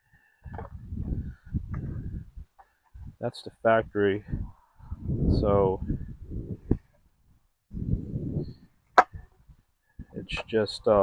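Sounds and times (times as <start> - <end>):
rumbling handling noise on microphone: 0.4 - 3.2, 3.9 - 11.0.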